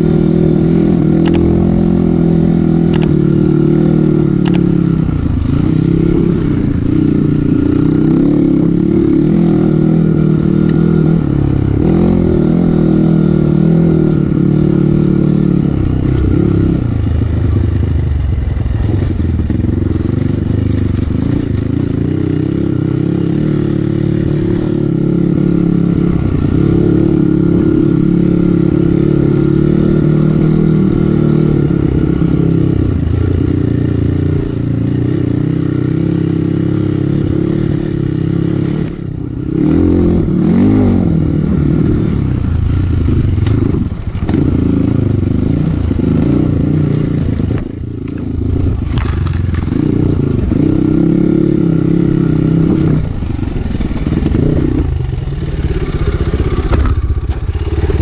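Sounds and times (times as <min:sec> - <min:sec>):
dirt bike engine revving: 0:00.0 - 0:17.6, 0:18.5 - 0:58.0.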